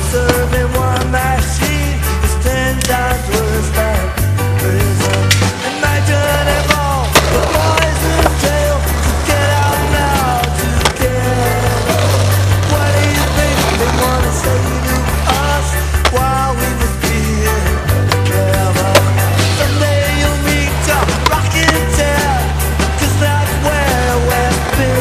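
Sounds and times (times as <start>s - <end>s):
rock music: 0.0s - 25.0s
skateboard rolling: 0.0s - 25.0s.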